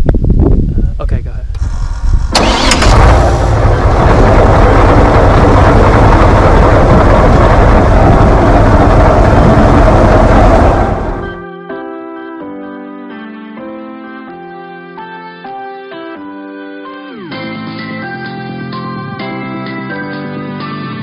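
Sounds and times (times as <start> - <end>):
airboat engine and propeller: 1.6 - 11.4.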